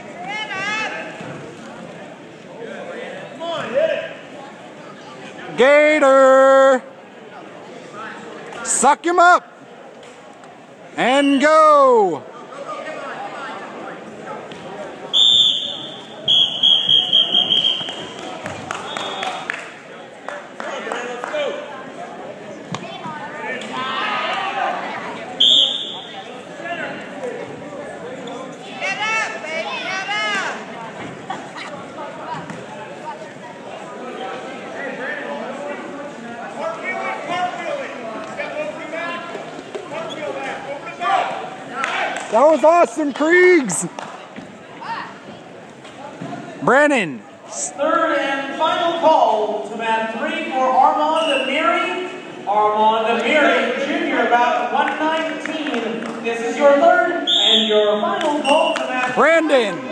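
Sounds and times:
referee's whistle blowing: 0:15.1 - 0:18.2, 0:25.4 - 0:26.2, 0:51.2 - 0:51.6, 0:57.2 - 0:58.9.

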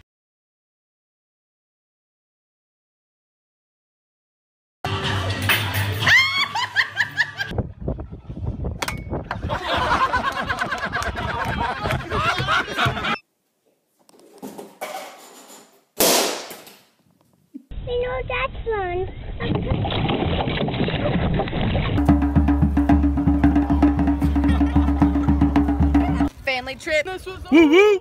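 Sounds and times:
music with steady beat: 0:22.0 - 0:26.3
voices: 0:23.4 - 0:28.0.

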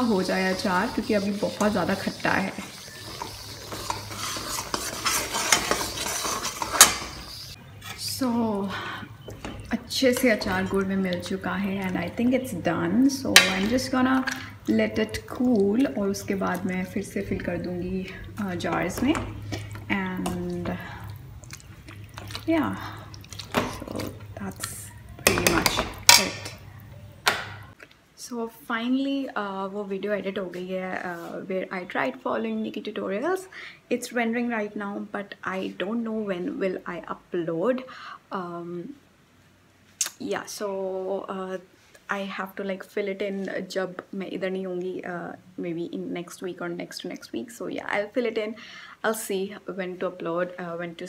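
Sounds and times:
ladle scraping a metal pan: 0:00.0 - 0:08.2
sizzling: 0:00.0 - 0:27.8.

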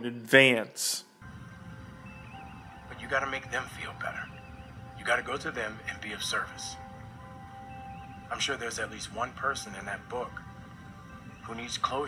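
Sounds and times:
quiet background score music: 0:00.0 - 0:12.0.

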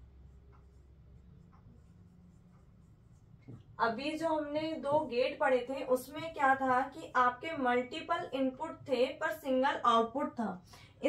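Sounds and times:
marker pen writing on whiteboard: 0:00.0 - 0:10.2.

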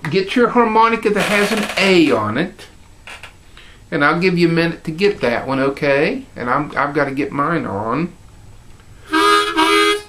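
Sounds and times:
harmonica chord: 0:09.0 - 0:10.0.

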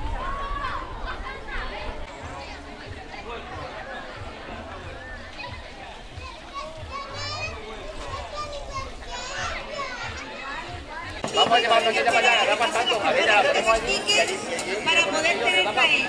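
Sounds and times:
children playing and chattering: 0:00.0 - 0:16.0.

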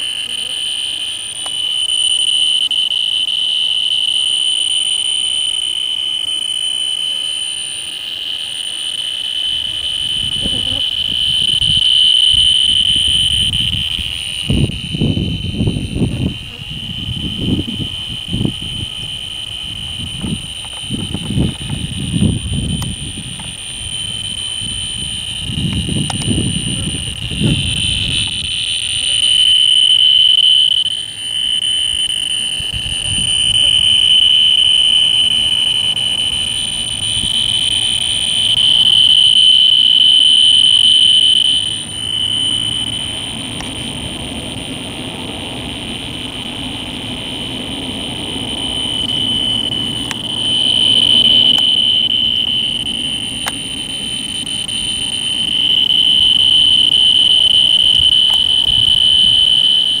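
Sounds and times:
loud high-pitched tone: 0:00.0 - 1:00.0.

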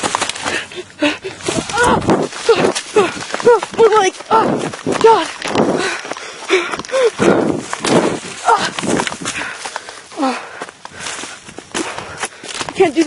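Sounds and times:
footsteps through dry undergrowth: 0:00.0 - 0:13.0
breathless cries: 0:00.4 - 0:12.6.

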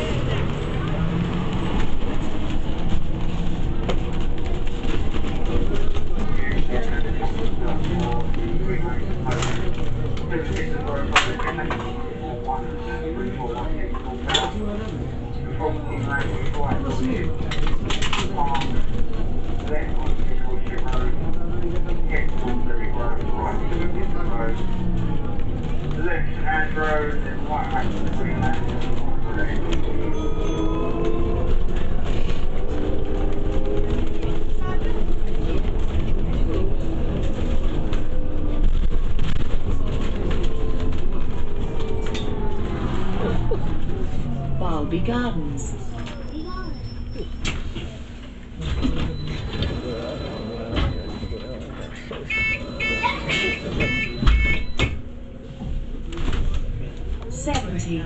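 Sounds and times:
bus engine and road rumble: 0:00.0 - 0:58.0
passengers talking: 0:00.0 - 0:58.0.

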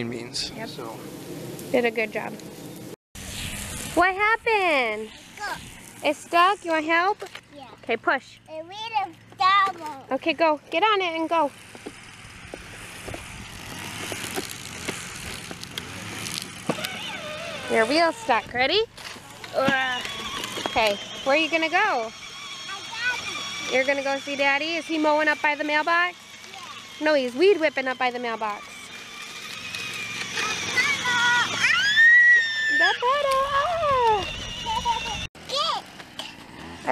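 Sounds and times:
small electric motor running: 0:00.1 - 0:36.9
electric toy scooter humming: 0:00.3 - 0:36.9
plastic wheels rolling on grass: 0:00.3 - 0:36.9
child squealing: 0:30.4 - 0:35.8.

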